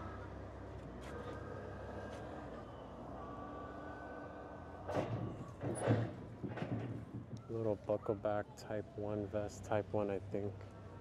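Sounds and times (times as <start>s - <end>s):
outdoor background hum: 0.0s - 11.0s.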